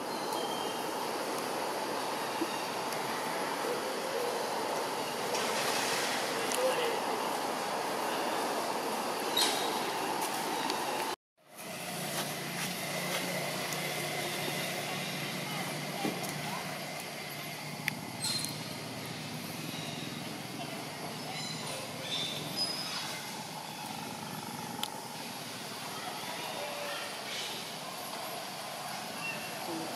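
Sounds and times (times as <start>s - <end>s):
outdoor background noise: 0.0s - 29.9s.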